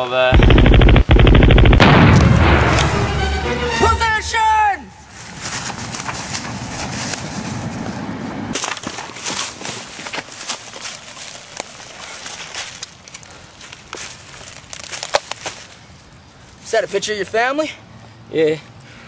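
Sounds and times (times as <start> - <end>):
low rumble: 0.4 - 3.5
footsteps through dry leaves: 5.1 - 7.8, 8.6 - 15.9
twigs snapping: 8.6 - 15.8.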